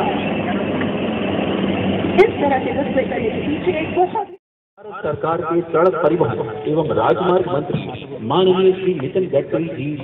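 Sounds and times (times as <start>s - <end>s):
helicopters flying overhead: 0.0s - 4.4s.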